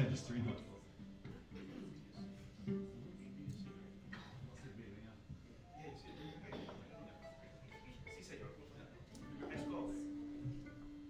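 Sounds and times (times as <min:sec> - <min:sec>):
plucked string notes: 0:06.6 - 0:11.0.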